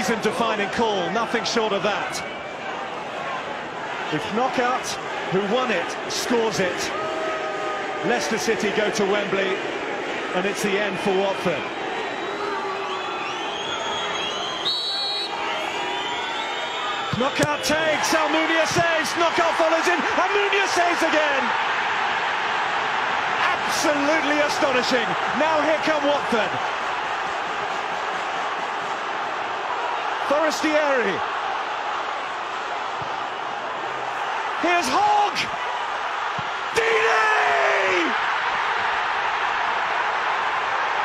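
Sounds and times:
crowd roaring: 0.0 - 41.0
fans whistling: 11.7 - 17.4
shrill referee whistle blast: 12.2 - 17.2.

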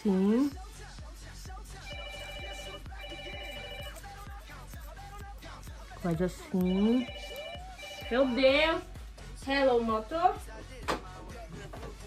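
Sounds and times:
background music with steady beat: 0.0 - 12.0
electronic phone ringtone: 1.8 - 4.2, 6.6 - 8.9.

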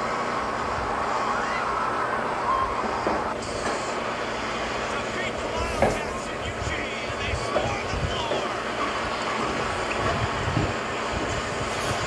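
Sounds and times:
crowd cheering and shouting: 0.0 - 3.4
sharp bang: 5.5 - 6.6.

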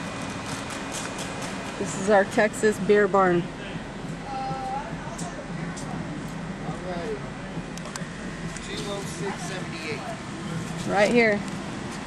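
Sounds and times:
air conditioning fan hiss: 0.0 - 12.0
car engine idling hum: 0.0 - 12.0
woman speaking: 1.8 - 3.5, 10.8 - 11.5.

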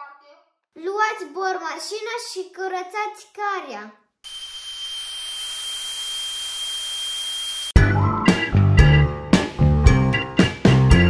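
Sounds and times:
dental drill whining: 4.2 - 7.8
upbeat music with drums and guitar: 7.8 - 11.0.

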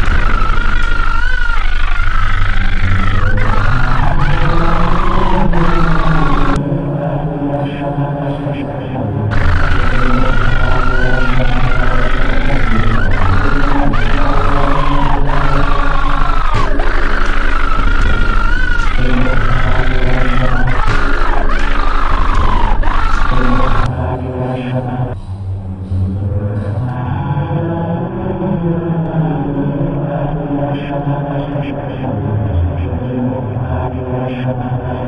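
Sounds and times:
wavering high whine: 0.0 - 34.1
deep chant-like drone: 0.0 - 35.0
low pulsing hum: 0.0 - 35.0.

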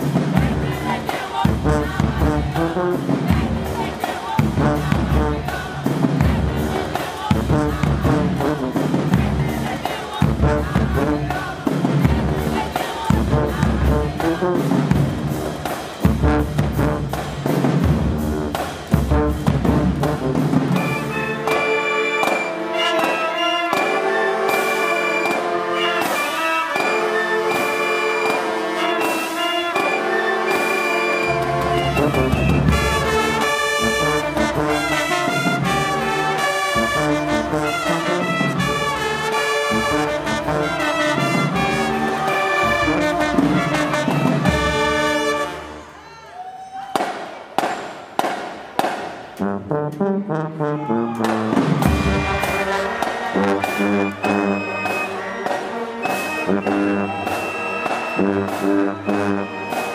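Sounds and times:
bass drum beat: 0.0 - 20.8
marching band music: 0.0 - 46.0, 47.0 - 59.9.

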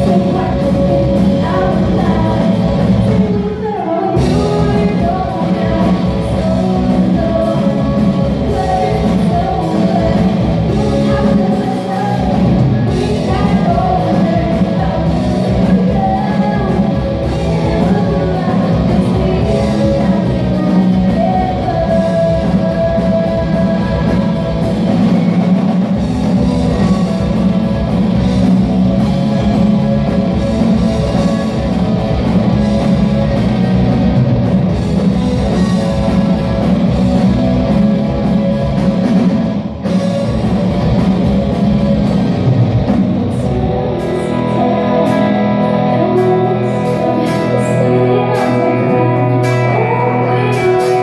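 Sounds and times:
live rock band playing: 0.0 - 51.0.

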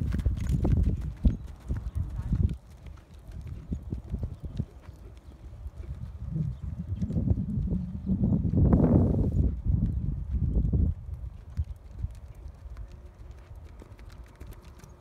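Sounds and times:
horse hoofbeats on sand: 0.0 - 15.0.

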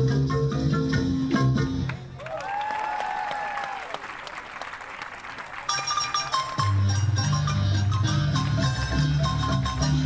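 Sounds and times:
marimba music: 0.0 - 1.8, 5.7 - 10.0
bass line: 0.0 - 1.9, 6.1 - 10.0
audience applause: 2.2 - 6.6.

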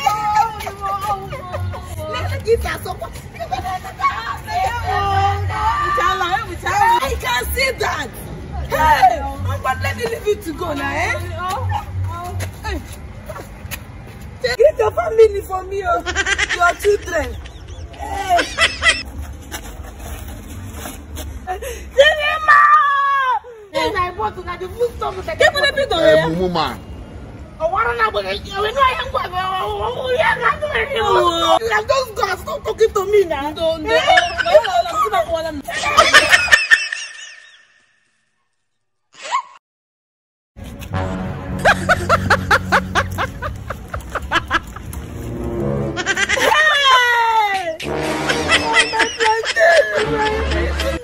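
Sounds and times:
bursts of laughter: 35.7 - 37.7, 41.6 - 45.0, 46.0 - 47.2, 48.0 - 51.0.

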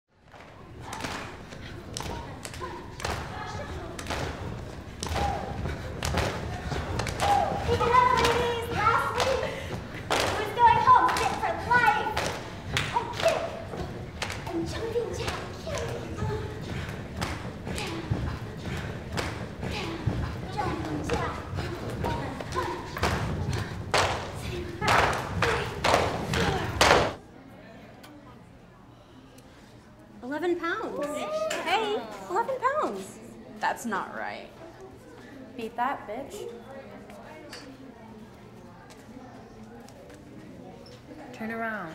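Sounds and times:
voices calling out: 0.6 - 27.2
people stamping on hard floor: 2.0 - 27.2.

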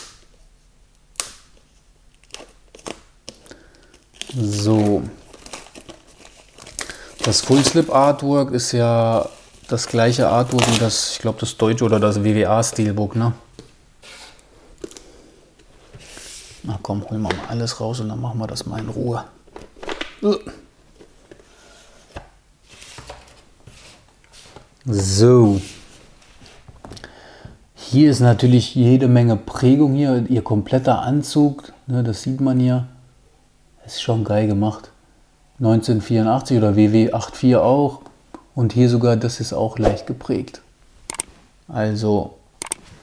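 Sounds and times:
card clicks and rustles: 2.1 - 8.1
cardboard sleeve snapping open: 10.4 - 10.9.

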